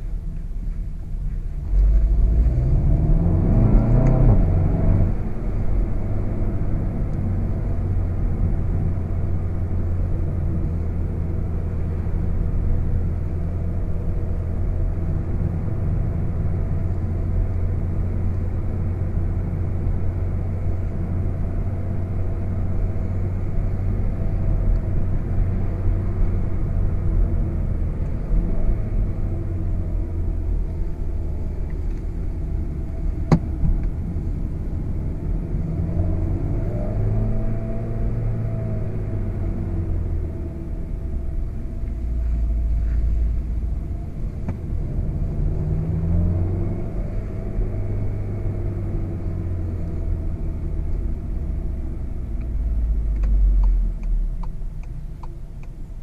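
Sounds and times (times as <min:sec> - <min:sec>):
car engine drone: 0:00.0 - 0:56.0
road noise: 0:00.0 - 0:56.0.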